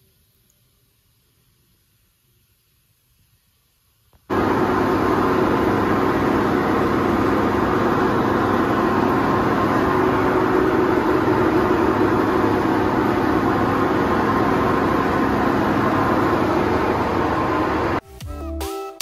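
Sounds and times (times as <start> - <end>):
steady machine hiss: 4.3 - 18.0.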